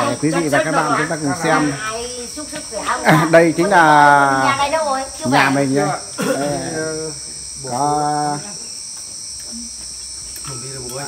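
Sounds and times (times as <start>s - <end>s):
crickets chirping chorus: 0.0s - 11.0s.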